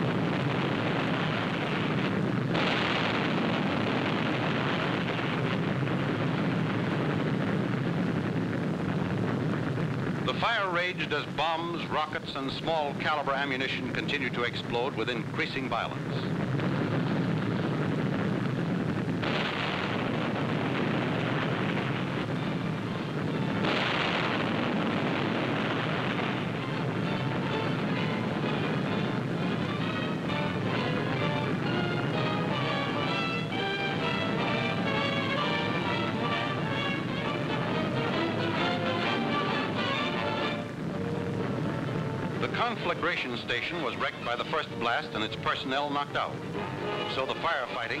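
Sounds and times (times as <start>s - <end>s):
low rumble: 0.0s - 11.5s, 15.9s - 48.0s
explosion blasts: 0.0s - 48.0s
film music: 25.8s - 48.0s.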